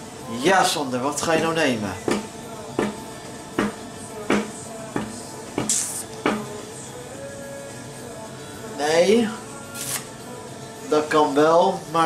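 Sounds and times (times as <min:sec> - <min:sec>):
brief hiss: 0:05.6 - 0:06.2.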